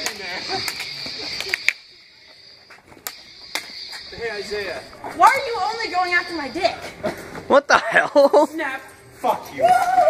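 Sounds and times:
toy lightsaber blades clacking: 0:00.0 - 0:06.8
high-pitched hum: 0:00.0 - 0:07.6.

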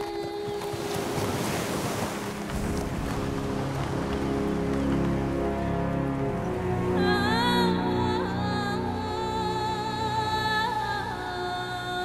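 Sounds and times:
ocean waves on beach: 0:00.0 - 0:07.8
orchestral film score: 0:00.0 - 0:12.0.

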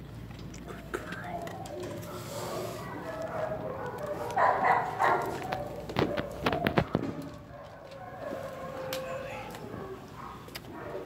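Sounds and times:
dog barking: 0:02.0 - 0:11.0.

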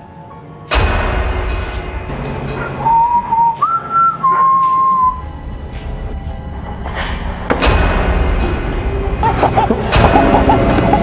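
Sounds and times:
low background music: 0:00.0 - 0:11.0
person whistling a tune: 0:02.8 - 0:05.3.

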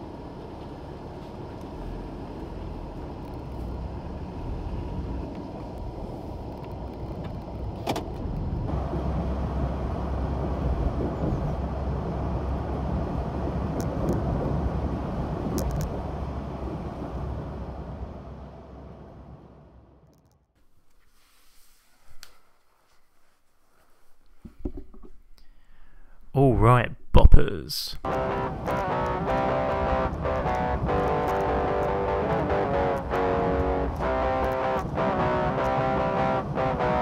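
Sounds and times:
passing cars rumble: 0:00.0 - 0:20.0, 0:28.0 - 0:37.0.

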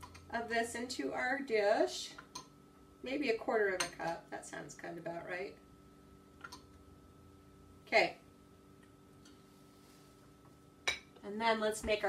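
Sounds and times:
tableware clink: 0:10.9 - 0:11.1.

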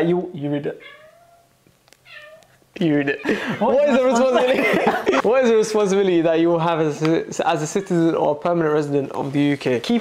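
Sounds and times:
pet's high-pitched cry: 0:00.8 - 0:01.5, 0:02.1 - 0:02.5.

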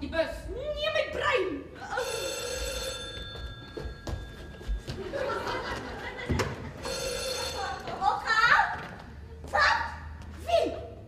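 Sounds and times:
telephone ringing: 0:01.9 - 0:06.2, 0:06.8 - 0:08.0.

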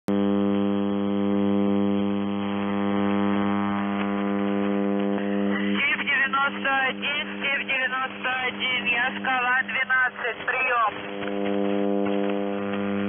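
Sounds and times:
radio interference buzzing hum: 0:00.0 - 0:13.0
voice on radio: 0:05.5 - 0:11.0.

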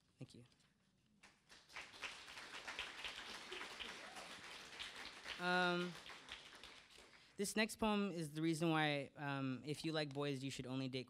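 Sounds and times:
audience applauding: 0:01.2 - 0:07.4.

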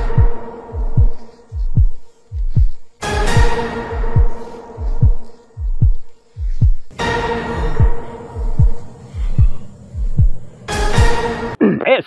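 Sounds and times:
deep bass drum hits: 0:00.0 - 0:11.4
held chord: 0:06.9 - 0:08.5.

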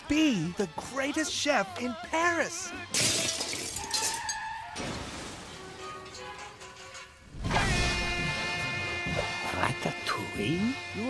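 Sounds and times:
glass window shattering: 0:02.9 - 0:08.0
glass shards tinkling: 0:03.0 - 0:04.4.

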